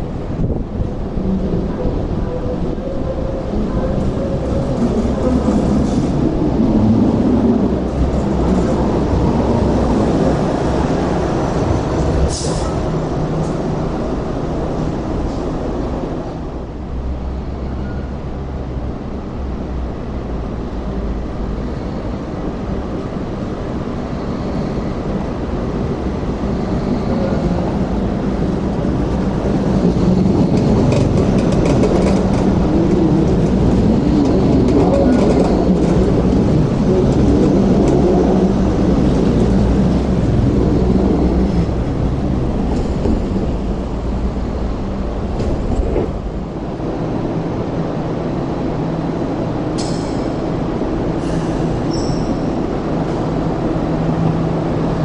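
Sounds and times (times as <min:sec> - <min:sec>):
light rail car rumbling past: 0:00.0 - 0:55.0
sharp clicks of train: 0:30.2 - 0:38.0, 0:42.6 - 0:43.6, 0:45.1 - 0:46.4, 0:49.7 - 0:53.3.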